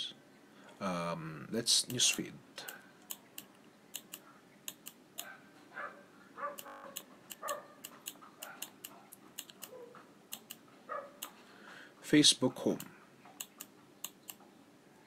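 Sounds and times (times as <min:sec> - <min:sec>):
mouse clicking: 0:03.0 - 0:05.3, 0:06.6 - 0:10.6, 0:12.8 - 0:14.4.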